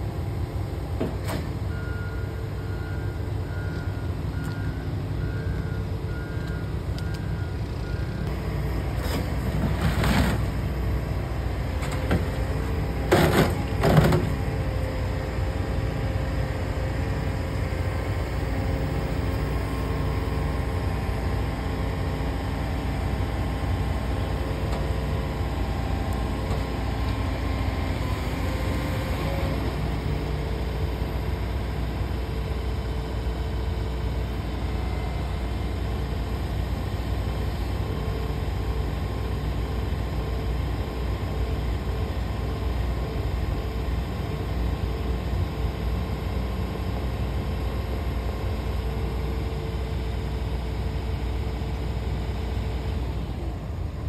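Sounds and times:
excavator engine and hydraulics: 0:00.0 - 0:54.0.

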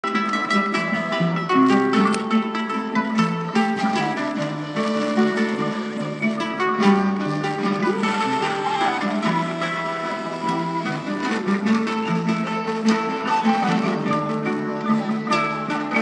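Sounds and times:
plucked string ensemble music: 0:00.0 - 0:16.0.

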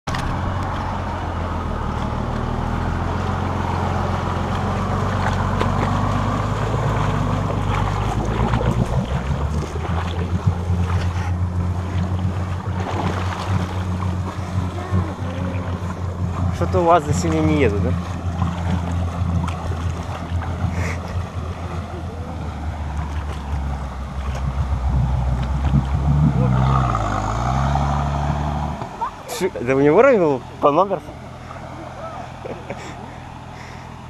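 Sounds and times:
engine droning: 0:00.0 - 0:34.0
water churning and splashing: 0:00.1 - 0:34.0.

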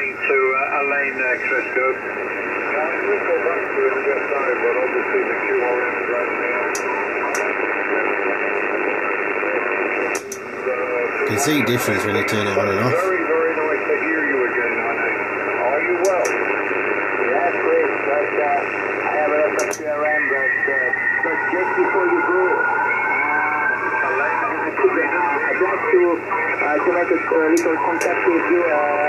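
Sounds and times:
radio band noise hiss: 0:00.0 - 0:29.0
person speaking over radio: 0:11.3 - 0:13.1.

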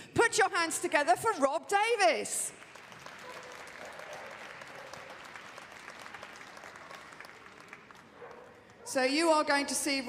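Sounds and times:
audience applauding: 0:02.6 - 0:08.8.

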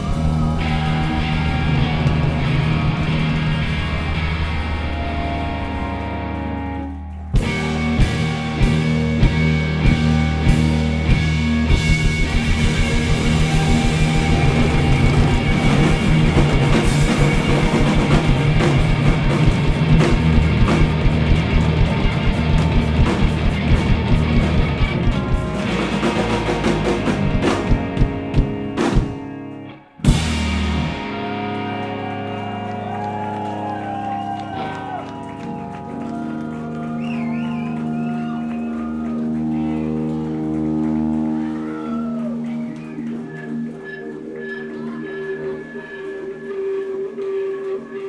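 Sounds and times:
electric guitar: 0:00.0 - 0:48.0
rock band playing live: 0:00.0 - 0:48.0
kick drum beat: 0:11.8 - 0:16.6, 0:27.4 - 0:29.2.

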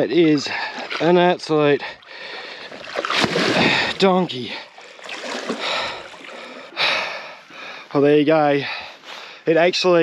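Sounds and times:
water splashing and sloshing: 0:00.0 - 0:07.8.

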